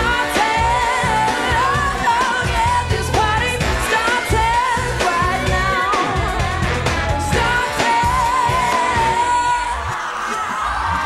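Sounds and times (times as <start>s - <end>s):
woman singing pop song: 0.0s - 10.2s
band with drum beat and bass: 0.0s - 11.0s.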